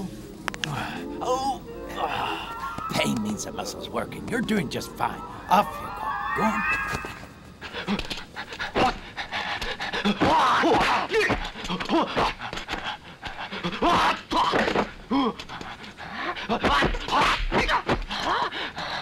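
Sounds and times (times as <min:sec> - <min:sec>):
fighters grunting and shouting: 0:10.0 - 0:12.8, 0:13.6 - 0:15.6, 0:16.2 - 0:18.5.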